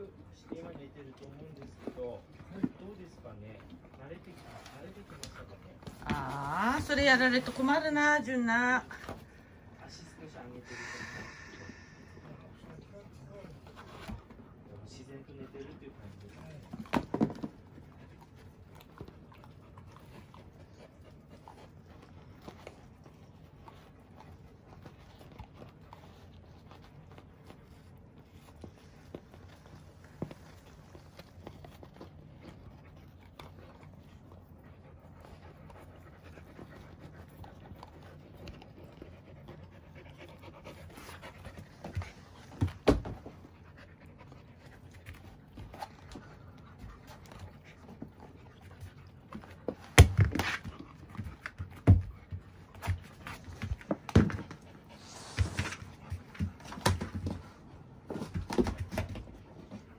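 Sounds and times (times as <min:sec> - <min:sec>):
dogs panting: 0:00.0 - 0:59.9.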